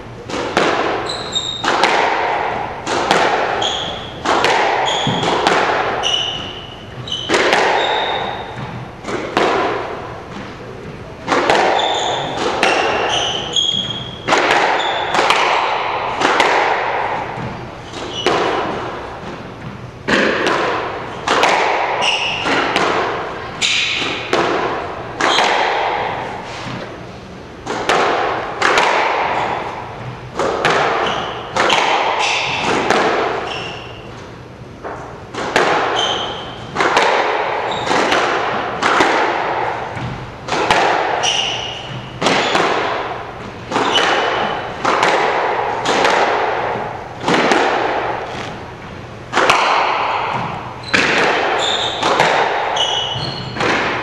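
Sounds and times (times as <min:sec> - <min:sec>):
squash ball struck by racquets: 0:00.0 - 0:54.0
ball smacking off court walls: 0:00.3 - 0:26.8, 0:27.6 - 0:33.9, 0:34.8 - 0:48.7, 0:49.3 - 0:54.0.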